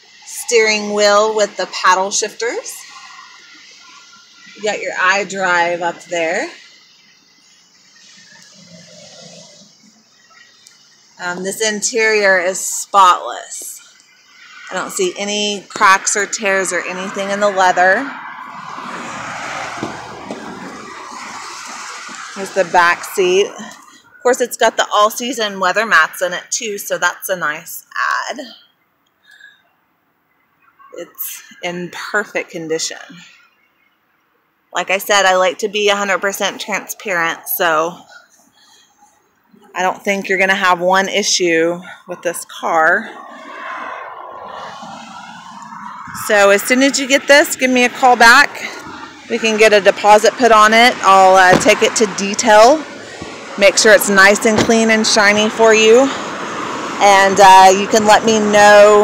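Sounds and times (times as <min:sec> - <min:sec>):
outdoor background hiss: 0:00.0 - 0:41.8, 0:44.1 - 0:59.0
road traffic rushing: 0:00.0 - 0:59.0.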